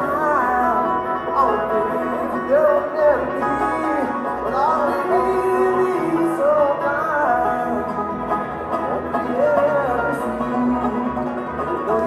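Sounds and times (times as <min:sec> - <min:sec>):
bluegrass band playing: 0:00.0 - 0:12.0.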